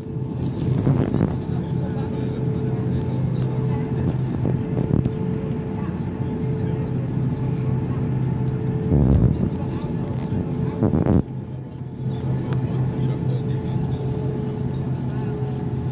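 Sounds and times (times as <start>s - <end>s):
jet engines humming: 0.0s - 15.9s.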